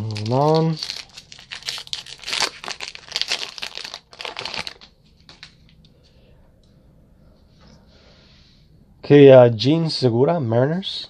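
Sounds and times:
wrapper tearing and crinkling: 0.0 - 5.7.

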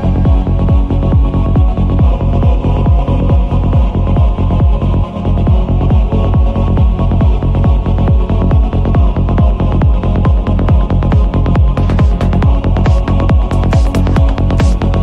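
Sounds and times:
kick drum beat: 0.0 - 15.0
rolling bassline: 0.0 - 15.0.

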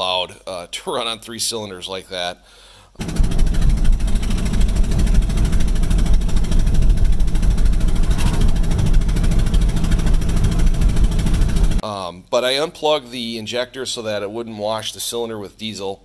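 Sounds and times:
diesel engine running: 3.0 - 11.8
loud fast engine pulsing: 3.0 - 11.8.

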